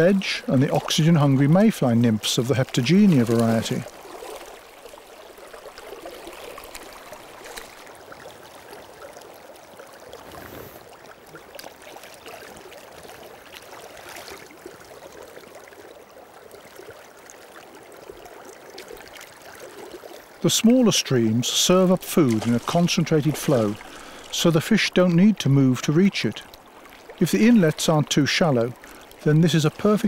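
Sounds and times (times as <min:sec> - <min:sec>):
faint splashes: 0:00.0 - 0:30.0
river current flowing: 0:00.0 - 0:30.0.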